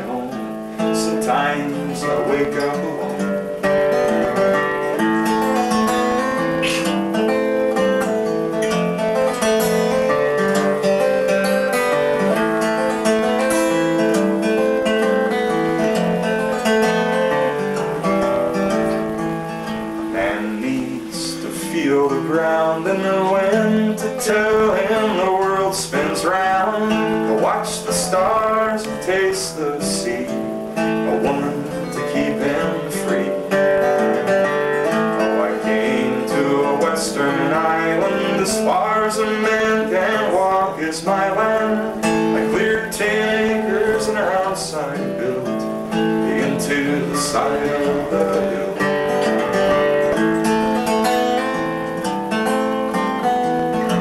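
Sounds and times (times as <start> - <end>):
acoustic guitar chords: 0.0 - 54.0.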